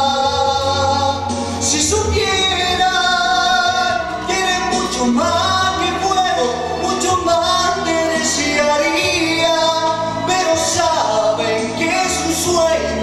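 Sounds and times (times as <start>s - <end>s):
man singing into a microphone: 0.0s - 13.0s.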